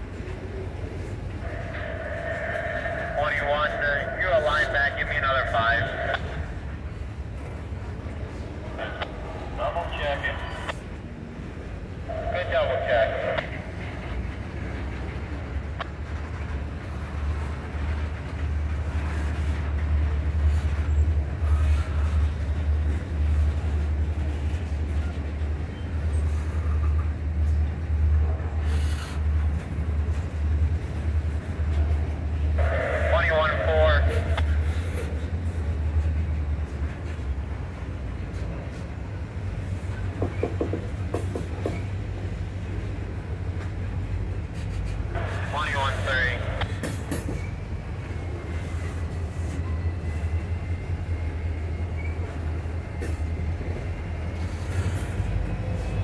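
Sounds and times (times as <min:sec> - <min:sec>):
train wheels rumbling on rail: 0:00.0 - 0:56.0.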